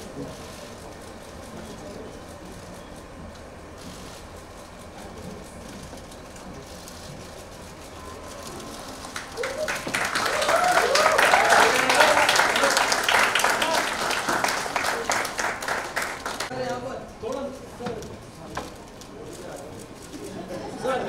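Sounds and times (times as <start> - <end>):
audience applause: 8.9 - 16.5.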